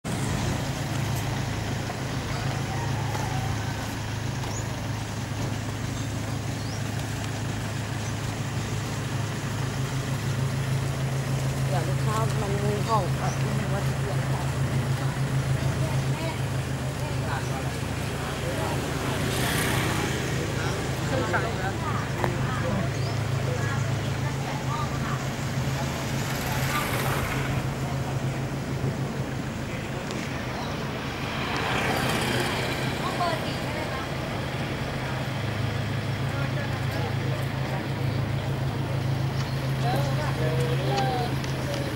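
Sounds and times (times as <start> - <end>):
outdoor background noise: 0.0 - 41.9
faint voices: 0.1 - 41.9.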